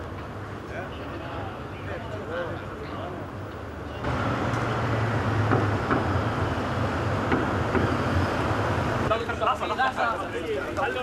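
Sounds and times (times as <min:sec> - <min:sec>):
road noise: 0:00.0 - 0:11.0
motorcade driving past: 0:03.8 - 0:09.3
voices: 0:08.5 - 0:11.0.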